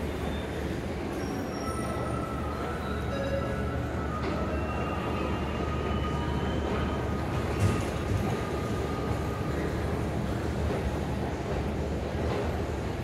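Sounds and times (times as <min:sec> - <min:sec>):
electric train low rumble: 0:00.0 - 0:13.0.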